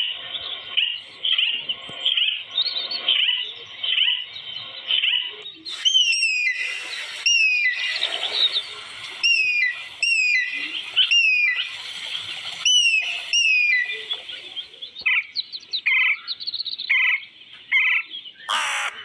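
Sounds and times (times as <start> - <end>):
background bird chatter: 0.0 - 19.0.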